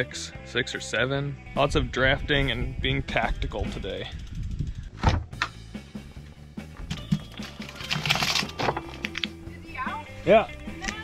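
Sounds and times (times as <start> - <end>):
background music: 0.0 - 4.3, 5.2 - 11.0.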